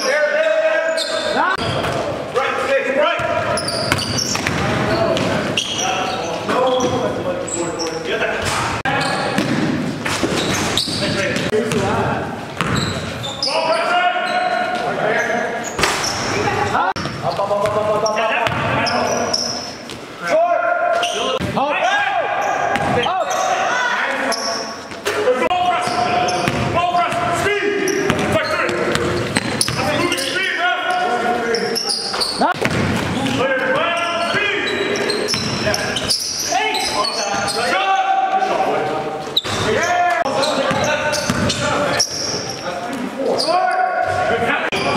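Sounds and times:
players' voices: 0.0s - 44.9s
ball bouncing on hardwood floor: 32.6s - 33.1s.

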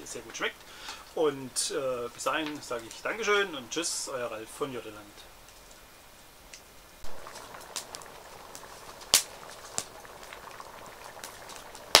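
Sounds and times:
campfire crackling: 0.0s - 12.0s
faint steady hiss: 0.0s - 12.0s
sharp pops from fire: 6.5s - 12.0s.

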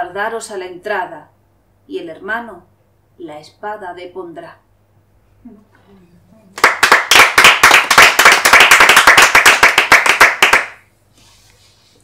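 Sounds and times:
people clapping: 6.6s - 10.8s.

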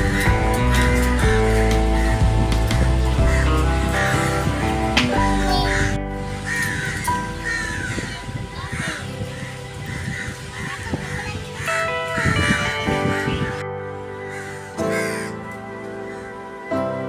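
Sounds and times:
crows cawing: 0.0s - 13.6s, 14.2s - 16.3s
background music with held tones: 0.0s - 17.0s.

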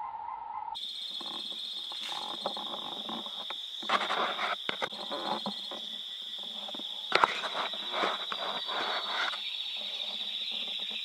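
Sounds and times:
insects droning: 0.8s - 11.0s
short irregular noises: 3.8s - 5.4s.

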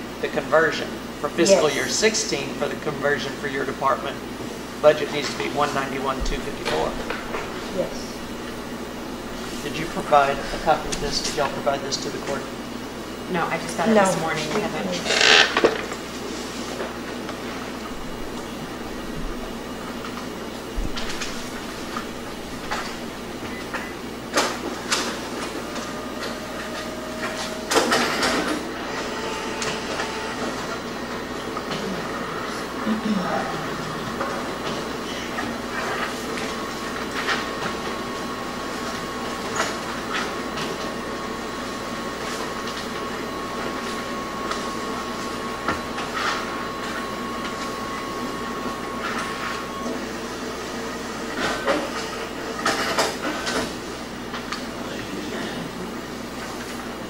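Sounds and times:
room noise hum: 0.0s - 57.0s.

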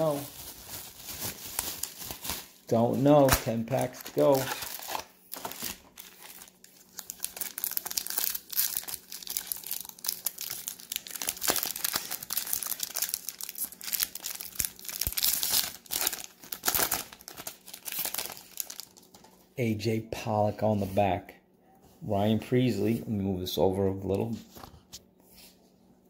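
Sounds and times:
foil wrapper crinkling: 0.0s - 19.4s.

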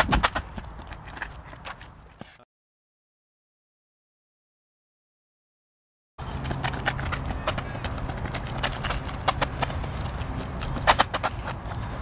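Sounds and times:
trainers tapping on rubber track: 6.2s - 11.8s.

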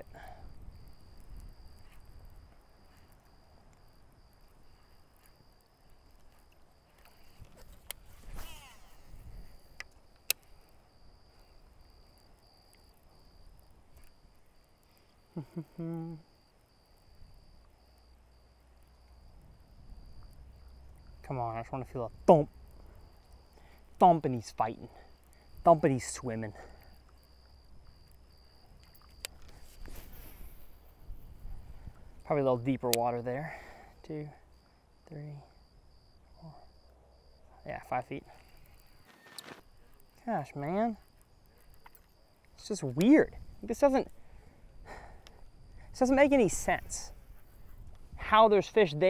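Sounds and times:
high pulsing insect chirp: 0.0s - 49.0s
fishing line whizzing off reel: 8.1s - 9.1s
person laughing: 8.4s - 9.0s, 15.3s - 16.2s.

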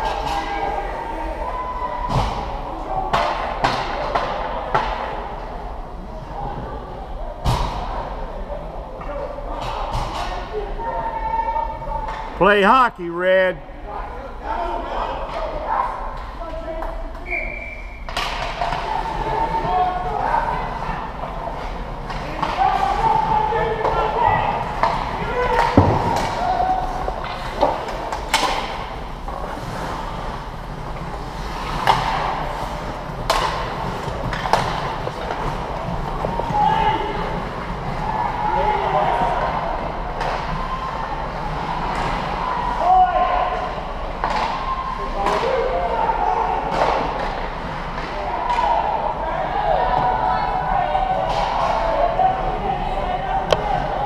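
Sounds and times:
spectators talking and calling out: 8.1s - 16.6s
puck and sticks knocking boards: 21.2s - 30.1s, 30.7s - 36.7s, 44.2s - 44.6s.

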